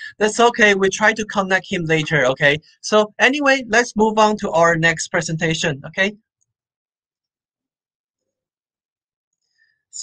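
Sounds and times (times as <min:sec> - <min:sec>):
man talking: 0:00.0 - 0:06.2.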